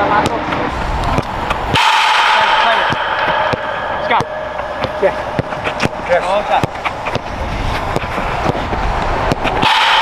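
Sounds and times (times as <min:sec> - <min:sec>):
players' voices: 0:00.0 - 0:09.8
loud sustained noise: 0:00.6 - 0:10.0
football kicks: 0:02.8 - 0:09.8.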